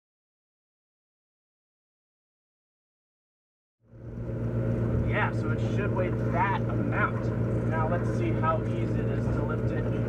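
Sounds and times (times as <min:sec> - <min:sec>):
low engine hum: 0:03.8 - 0:10.0.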